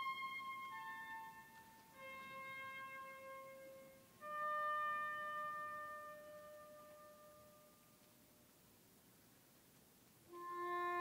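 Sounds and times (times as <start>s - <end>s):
woodwind holding a note: 0.0s - 8.0s, 10.3s - 11.0s.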